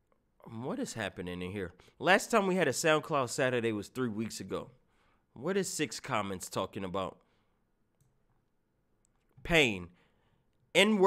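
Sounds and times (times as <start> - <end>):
person speaking: 9.1 - 10.0, 10.6 - 11.0.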